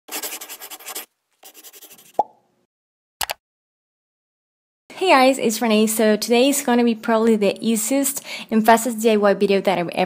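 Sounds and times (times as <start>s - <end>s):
pen scratching on paper: 0.1s - 2.2s.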